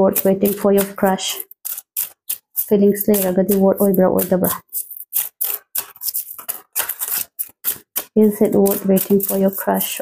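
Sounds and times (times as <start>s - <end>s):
cards being shuffled: 0.2s - 10.0s.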